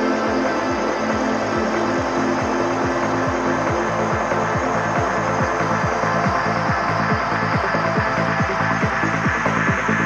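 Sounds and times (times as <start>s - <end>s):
electronic kick drum: 0.0s - 10.0s.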